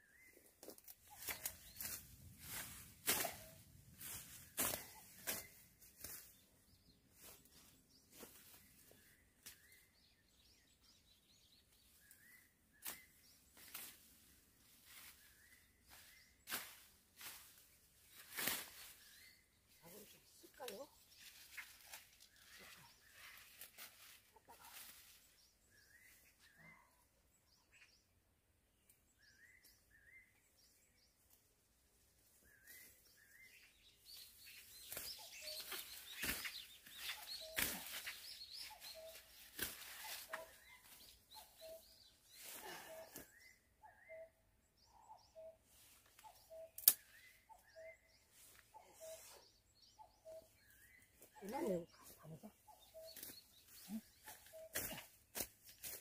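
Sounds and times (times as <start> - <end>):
birds chirping: 0.0 - 56.0
leaves and branches rustling: 0.4 - 9.8, 11.7 - 26.4, 31.2 - 43.3, 45.7 - 47.6, 50.2 - 56.0.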